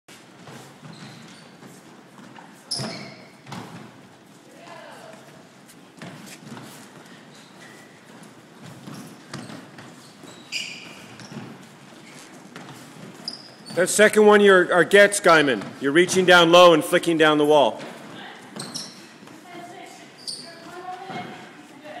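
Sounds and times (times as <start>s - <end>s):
sneakers squeaking on hardwood floor: 0.1s - 17.2s, 17.8s - 22.0s.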